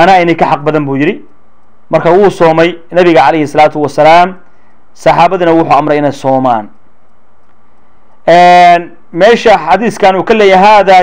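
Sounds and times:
faint background hum: 0:00.0 - 0:11.0.

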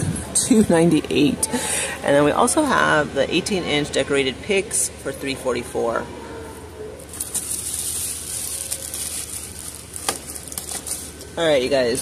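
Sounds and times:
plastic wrapping crinkling: 0:07.0 - 0:12.0.

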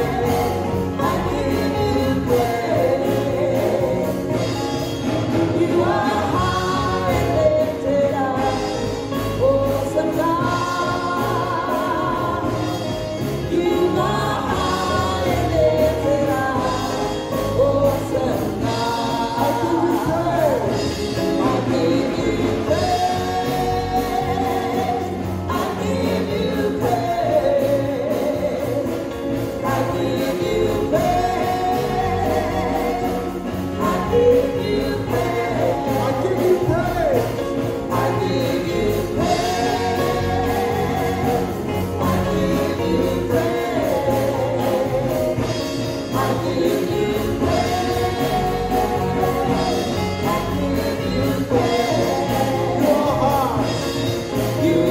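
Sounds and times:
accompanying music: 0:00.0 - 0:54.9
choir singing: 0:00.0 - 0:54.9
man singing into microphone: 0:00.0 - 0:54.9.

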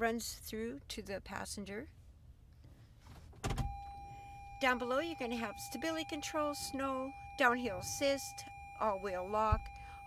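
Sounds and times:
steady high tone: 0:03.7 - 0:10.0.

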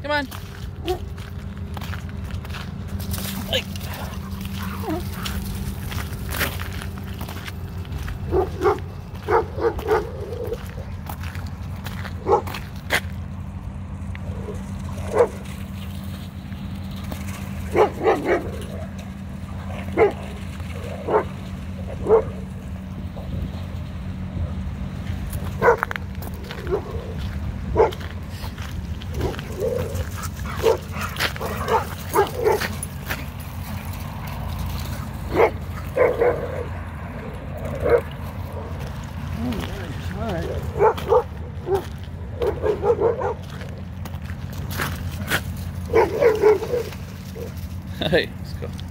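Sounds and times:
dogs barking and yipping: 0:00.5 - 0:48.0.

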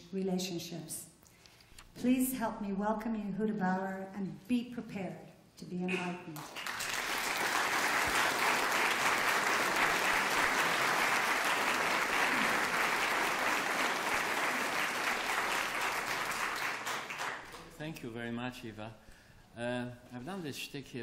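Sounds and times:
audience applauding: 0:06.4 - 0:17.8.

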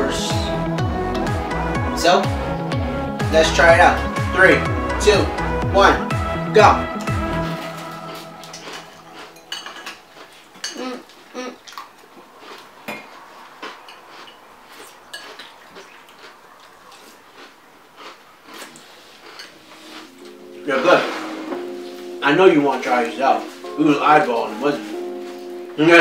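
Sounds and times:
music chord: 0:00.0 - 0:10.8, 0:19.6 - 0:26.0
metal spoon clinking on ceramic bowl: 0:09.4 - 0:10.0.

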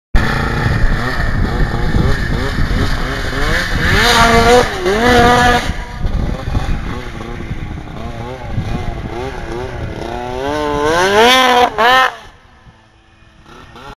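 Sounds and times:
snowmobile engine revving: 0:00.2 - 0:14.0.

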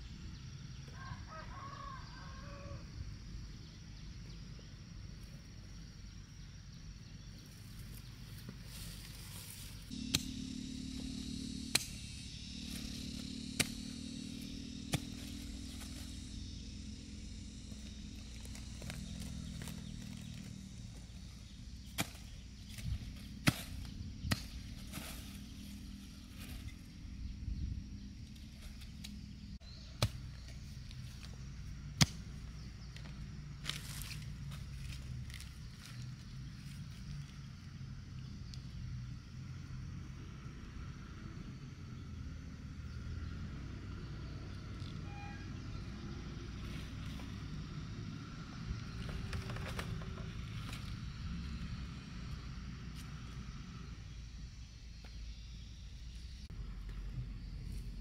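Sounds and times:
rustling of soil and weeds: 0:07.2 - 0:10.2, 0:11.0 - 0:37.8
hoe knocking ground: 0:12.6 - 0:16.3, 0:17.7 - 0:25.6.

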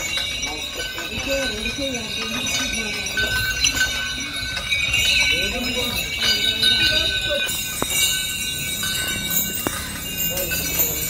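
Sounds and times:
bells jingling: 0:00.0 - 0:11.0
chains clinking: 0:00.0 - 0:11.0
crowd of people talking: 0:00.0 - 0:11.0.

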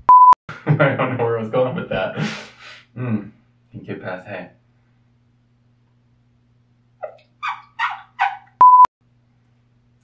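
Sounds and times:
flat censor beep: 0:00.1 - 0:00.4, 0:08.6 - 0:08.9.

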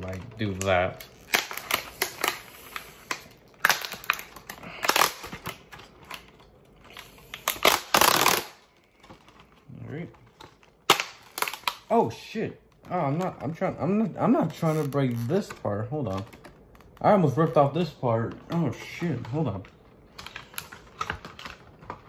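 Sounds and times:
plastic packaging crackling: 0:00.0 - 0:22.0.

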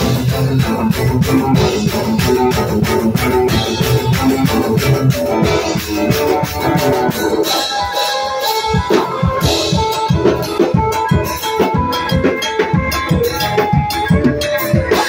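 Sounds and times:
drums: 0:00.0 - 0:15.0
live band playing dance tune: 0:00.0 - 0:15.0.

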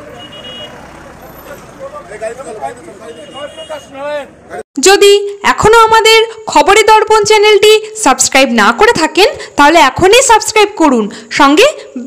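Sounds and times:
car driving past: 0:00.0 - 0:03.1.

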